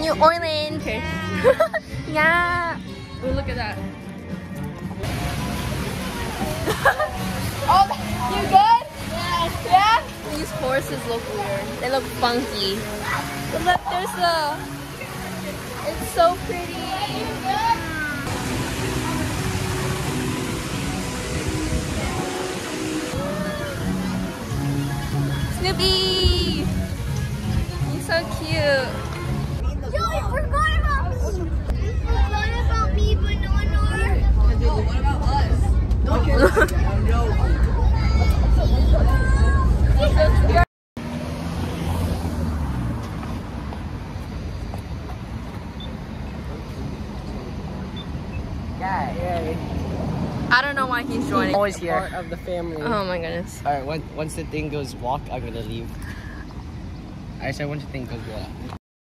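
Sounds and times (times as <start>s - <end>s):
steady traffic hum: 0.0s - 58.8s
steady rushing noise: 4.9s - 45.7s
vehicle passing: 40.1s - 45.0s, 48.6s - 54.2s.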